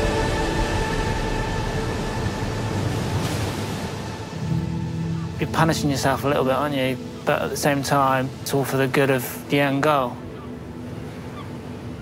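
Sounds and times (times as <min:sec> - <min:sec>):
sustained music drone: 0:00.0 - 0:07.6
ocean wave breaking: 0:00.0 - 0:12.0.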